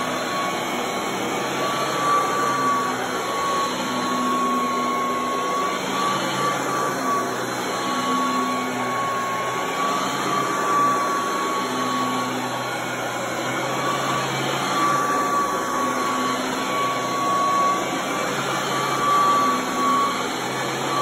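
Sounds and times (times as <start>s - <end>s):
vacuum cleaner running over carpet: 0.0s - 21.0s.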